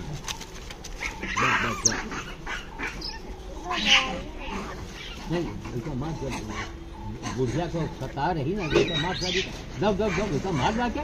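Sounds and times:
monkeys screeching: 0.0 - 11.0.

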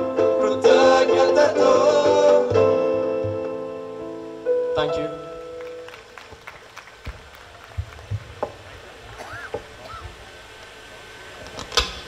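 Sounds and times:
audience clapping: 5.3 - 9.3.

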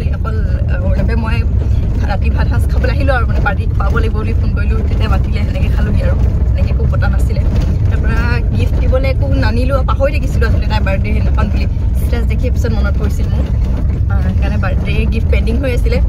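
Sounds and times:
car engine and tyres rumbling: 0.0 - 16.0
woman talking: 0.0 - 16.0.

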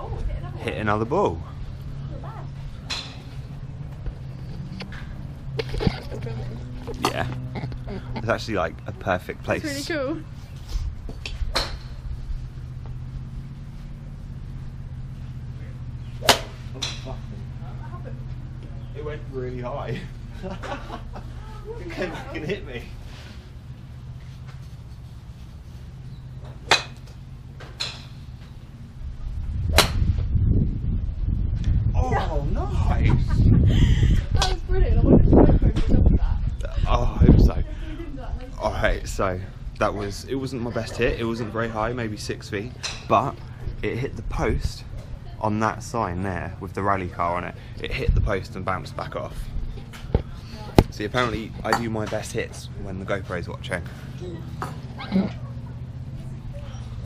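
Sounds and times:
low rumble: 0.0 - 57.0
steady low hum: 0.0 - 57.0
golf club striking ball: 11.2 - 12.1, 16.1 - 17.3, 26.4 - 28.5, 29.7 - 30.2, 42.8 - 43.1.

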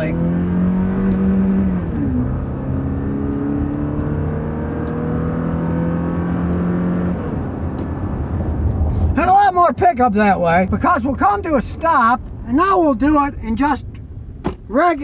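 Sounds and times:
engine accelerating and shifting gears: 0.0 - 9.2.

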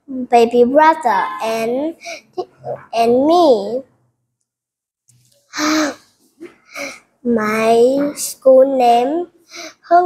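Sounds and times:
person breathy vocal sound: 5.6 - 7.1.

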